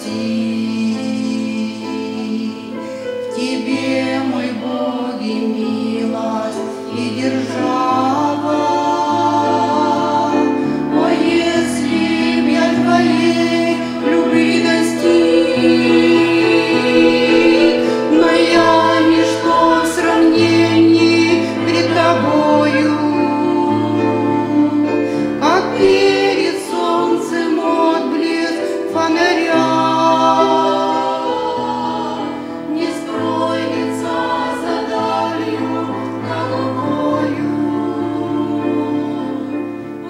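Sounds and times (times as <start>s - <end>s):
women singing a hymn in harmony: 0.0s - 40.0s.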